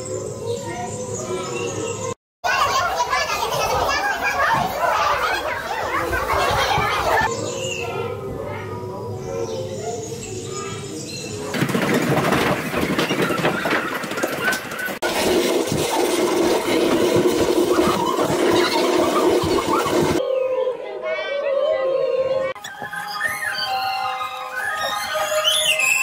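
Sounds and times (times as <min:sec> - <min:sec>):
mixed chatter: 0:00.0 - 0:11.5
high squeals: 0:22.6 - 0:26.0.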